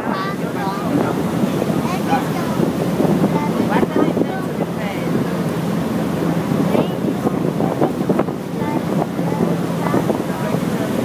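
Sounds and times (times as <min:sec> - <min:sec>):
boat engine humming: 0:00.0 - 0:11.0
water rushing past hull: 0:00.0 - 0:11.0
wind buffeting microphone: 0:00.0 - 0:11.0.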